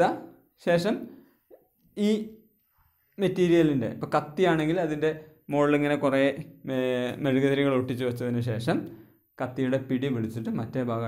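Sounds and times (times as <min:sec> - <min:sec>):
person speaking: 0:00.0 - 0:02.5.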